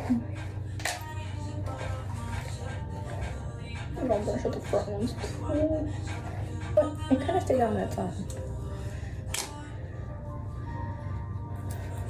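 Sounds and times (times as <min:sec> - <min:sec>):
ventilation hum: 0:00.0 - 0:12.0.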